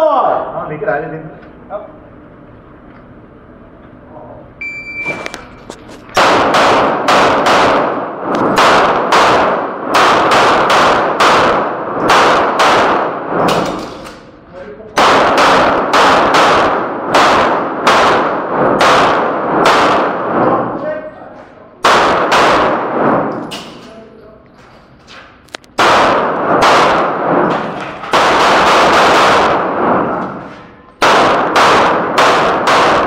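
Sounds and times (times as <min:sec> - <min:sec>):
handgun shots echoing: 0:06.2 - 0:14.3, 0:21.8 - 0:23.9, 0:31.0 - 0:33.0.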